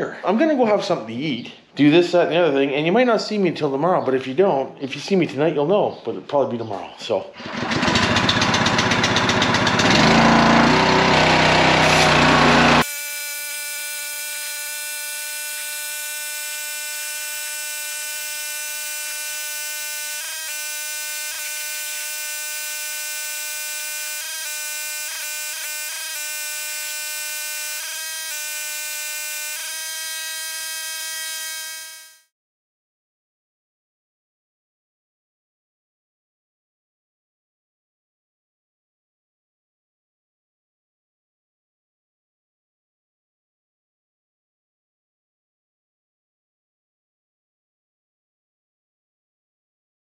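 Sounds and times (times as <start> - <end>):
pressure washer engine running: 7.4 - 18.6
high-pitched buzz: 10.0 - 32.3.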